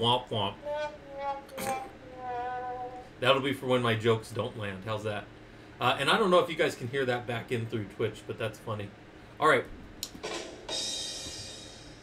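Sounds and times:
cymbal crash ringing: 10.2 - 12.0
quick drum hits: 10.2 - 12.0.

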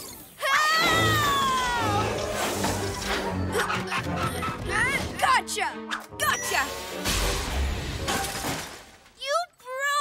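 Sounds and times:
background music: 0.4 - 9.7
cartoon ice shattering crash: 6.8 - 9.2.

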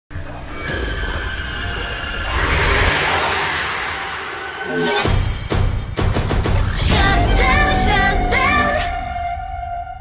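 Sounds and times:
rushing whoosh: 1.0 - 6.2.

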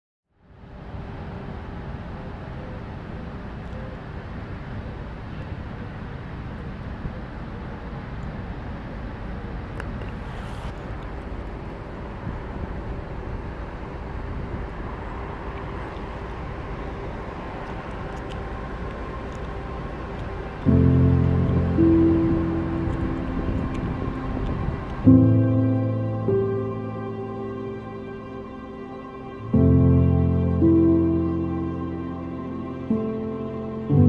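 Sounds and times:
faint steady hum: 0.4 - 34.0
low rumble: 11.2 - 34.0.

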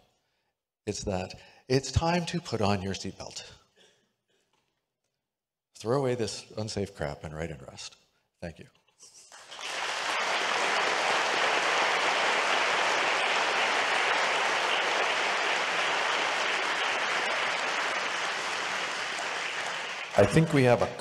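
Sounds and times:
audience applauding: 9.3 - 21.0.

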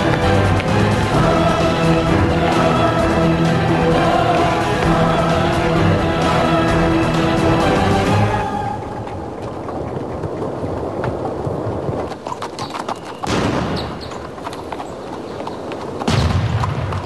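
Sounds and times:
noise of a large army: 0.0 - 14.9
horses' hooves clattering: 0.0 - 17.0.

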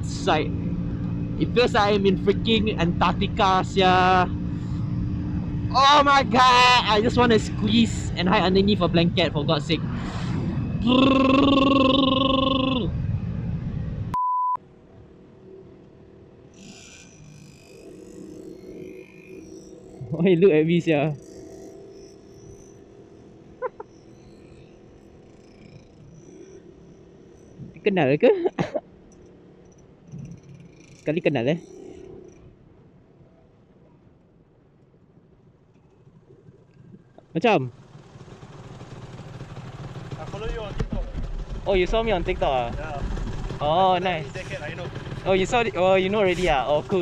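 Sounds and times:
motorcycle engine rumble: 0.0 - 16.5, 17.9 - 47.0
high censor bleep: 14.1 - 14.6.

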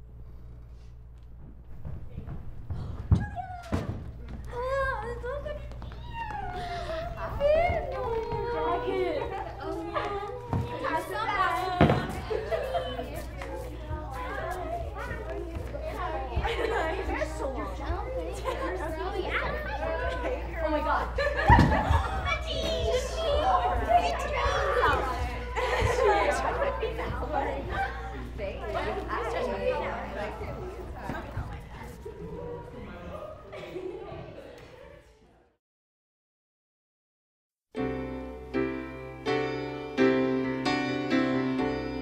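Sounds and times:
steady low hum: 0.0 - 32.6
group of people chatting: 2.1 - 35.5.

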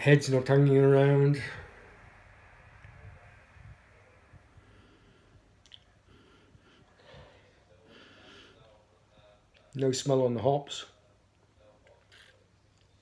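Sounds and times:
faint breaths: 1.2 - 9.7.

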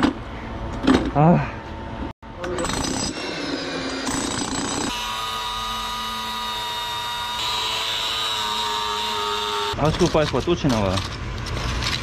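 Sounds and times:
angle grinder cutting steel: 2.9 - 9.8.

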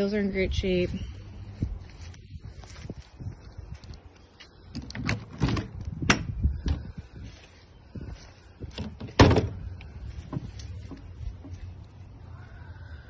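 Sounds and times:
door handling noise: 4.8 - 6.3.

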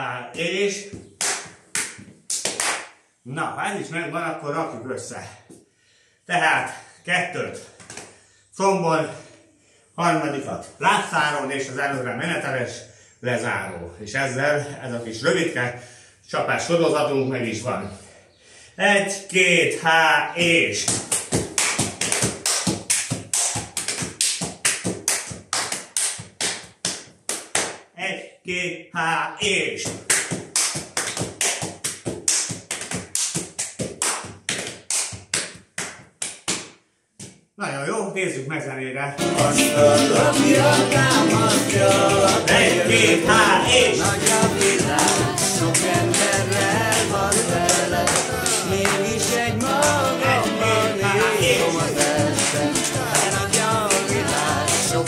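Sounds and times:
hand slaps on legs: 0.9 - 3.0, 20.8 - 27.8, 29.8 - 37.4, 44.2 - 49.0, 52.0 - 54.9.

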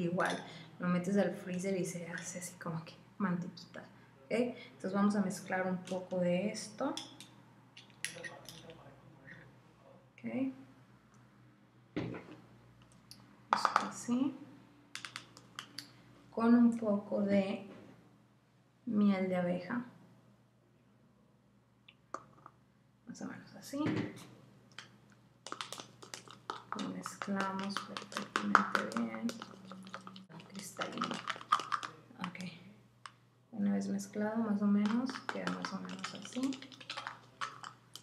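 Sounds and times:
stirring in plastic container: 25.4 - 32.6, 34.8 - 38.0.

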